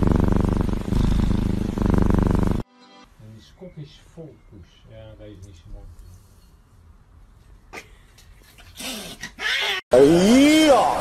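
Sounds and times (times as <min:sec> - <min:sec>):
cat hissing snarl: 0:00.0 - 0:02.6.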